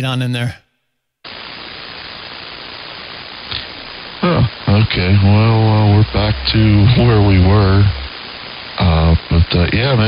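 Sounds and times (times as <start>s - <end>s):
radio static hiss: 1.2s - 10.0s.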